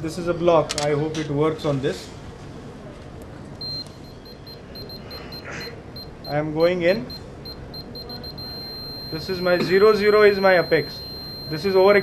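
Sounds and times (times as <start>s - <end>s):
short high beeps: 3.6s - 12.0s.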